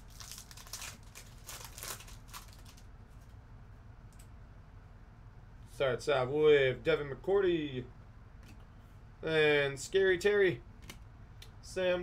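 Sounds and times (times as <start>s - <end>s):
plastic wrapper crinkling: 0.0s - 2.9s.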